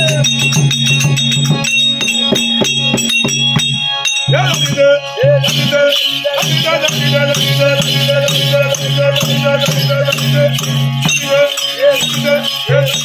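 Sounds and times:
harmonium drone: 0.0 - 13.0
metallic jingling: 0.0 - 13.0
wavering melody line: 0.0 - 13.0.

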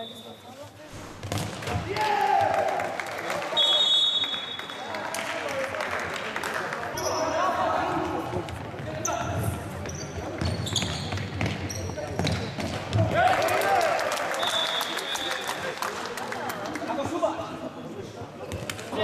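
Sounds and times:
shoes squeaking on floor: 8.8 - 12.8.

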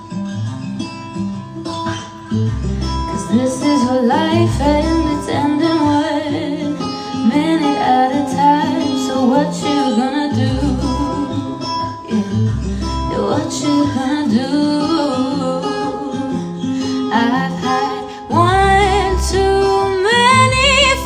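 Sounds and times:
guitar and bass accompaniment: 0.0 - 21.0
woman singing into microphone: 2.8 - 21.0.

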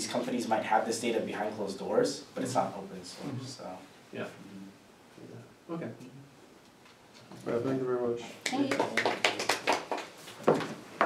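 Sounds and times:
small group clapping: 8.4 - 10.7.

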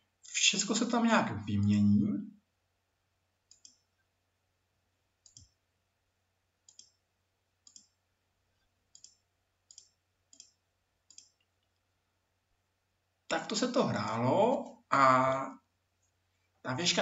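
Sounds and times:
computer mouse clicks: 3.5 - 3.9, 5.2 - 5.6, 6.7 - 7.0, 7.6 - 8.0, 8.9 - 11.8.

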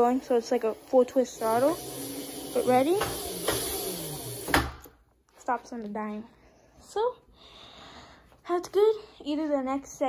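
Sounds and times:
electric bike wheel spinning: 0.0 - 4.9.

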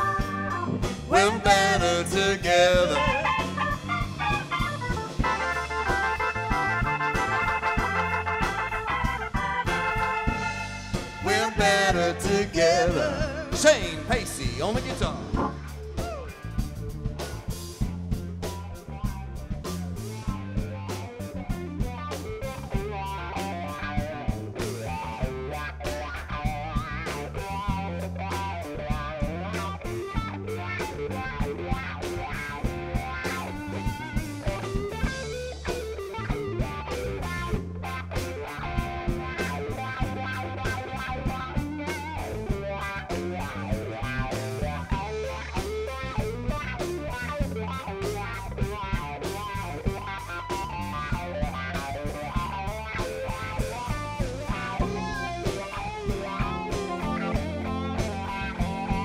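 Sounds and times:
bass guitar: 0.0 - 59.0
drum kit beat: 0.0 - 59.0
electric guitar: 0.0 - 59.0
keyboard: 0.0 - 59.0.

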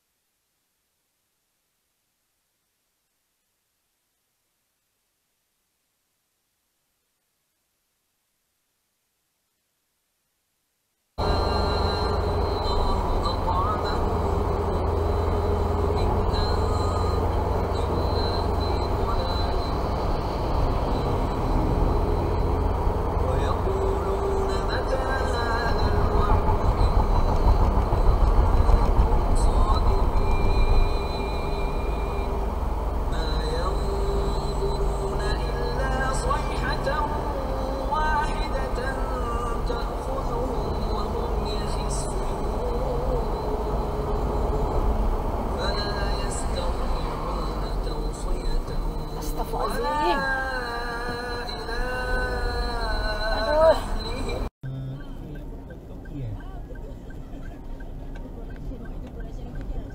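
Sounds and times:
car engine and road rumble: 11.2 - 59.9.

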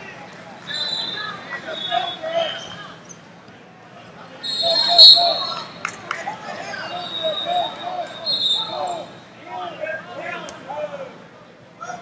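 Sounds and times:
voices calling out: 4.3 - 11.2.

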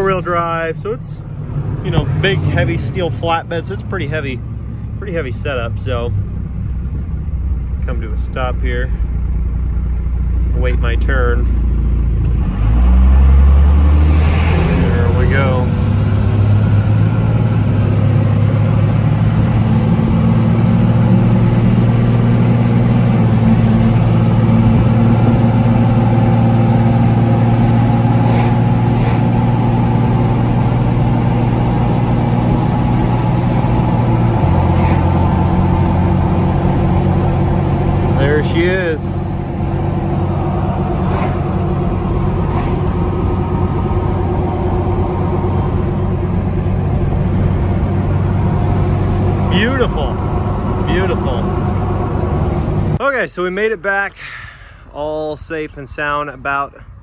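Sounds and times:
diesel engine pulling away: 0.0 - 53.0
turbo whistle: 20.3 - 25.6.

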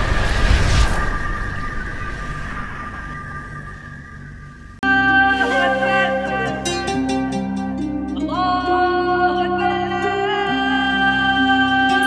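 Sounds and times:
low boom rumble: 0.0 - 4.8.

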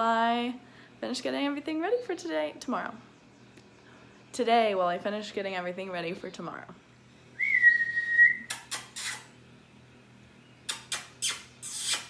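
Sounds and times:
person whistling: 7.4 - 8.6
short sharp hissing: 8.4 - 9.4, 10.7 - 12.0.

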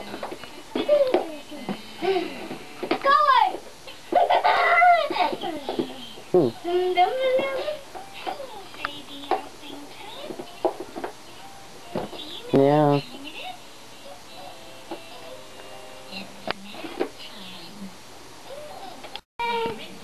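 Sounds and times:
young children babbling and giggling: 4.2 - 8.6.

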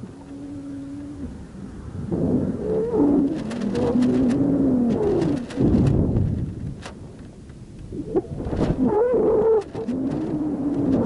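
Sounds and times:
creaking and squeaking: 8.6 - 11.0.

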